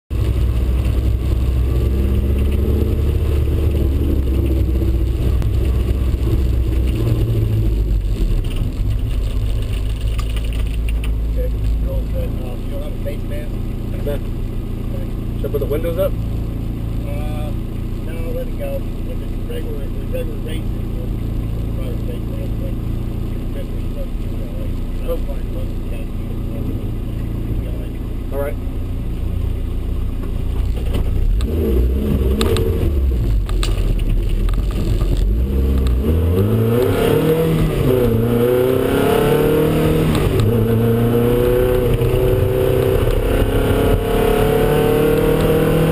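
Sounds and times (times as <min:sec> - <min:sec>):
car engine droning: 0:00.1 - 0:45.9.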